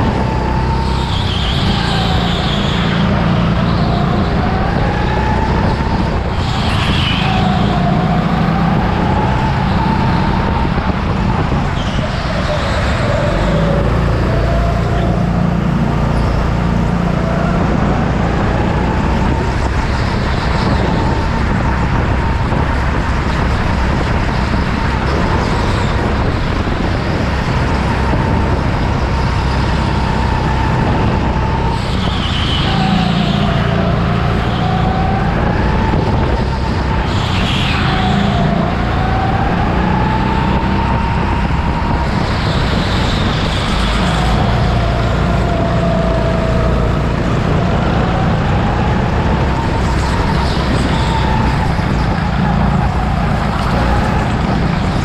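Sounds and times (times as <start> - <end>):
go-kart motor whine: 0.0 - 55.0.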